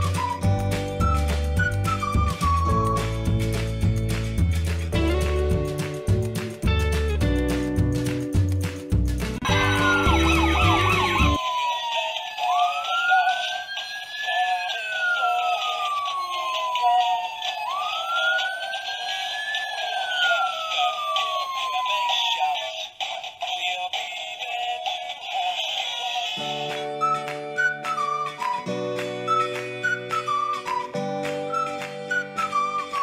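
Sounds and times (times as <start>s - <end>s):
music: 0.0s - 11.4s, 23.5s - 33.0s
siren wailing: 9.4s - 23.0s, 26.4s - 33.0s.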